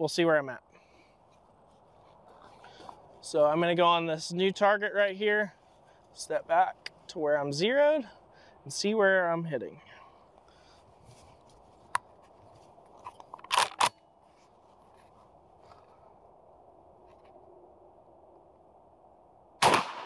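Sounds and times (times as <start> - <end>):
shotgun shot: 19.6 - 20.0.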